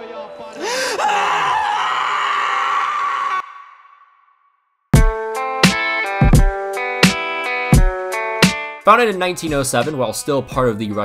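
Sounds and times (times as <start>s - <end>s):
man screaming: 0.5s - 3.9s.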